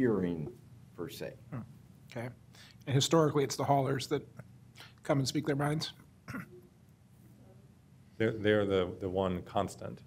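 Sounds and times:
person clearing throat: 0:06.2 - 0:06.7.

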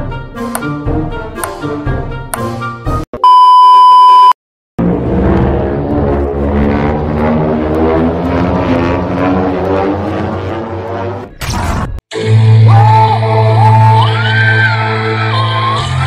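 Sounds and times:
dense steady drone: 0:04.8 - 0:11.2.

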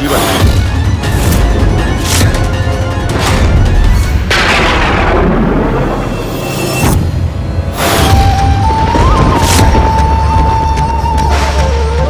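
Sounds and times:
booming impact: 0:03.1 - 0:10.0.

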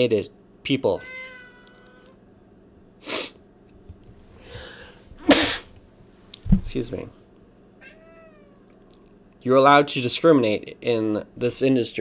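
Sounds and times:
cat meowing faintly: 0:01.0 - 0:02.2, 0:07.8 - 0:08.8.

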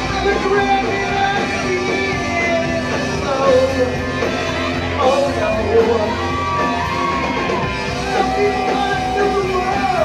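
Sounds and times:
bass guitar: 0:00.0 - 0:10.0
drums: 0:00.0 - 0:10.0
electric guitars: 0:00.0 - 0:10.0.

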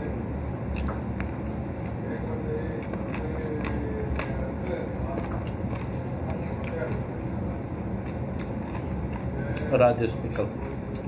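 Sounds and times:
man licking fingers and chewing: 0:08.0 - 0:09.7.

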